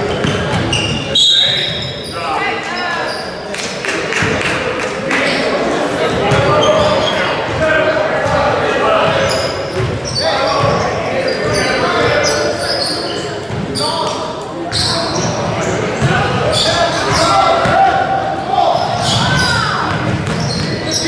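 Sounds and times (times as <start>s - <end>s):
sneaker squeaks: 0.0s - 3.6s, 6.3s - 7.5s, 9.0s - 17.8s, 18.7s - 21.0s
spectators chattering: 0.0s - 21.0s
basketball bouncing: 0.1s - 0.7s, 19.8s - 20.8s.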